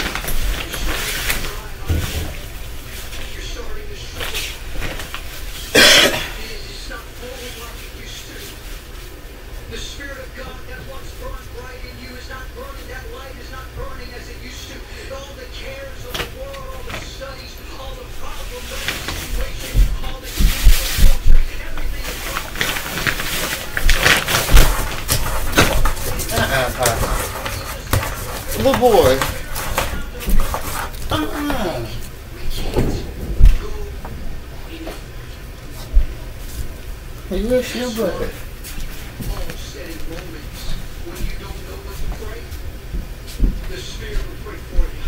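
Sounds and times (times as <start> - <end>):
faint voices: 0.3 - 45.0.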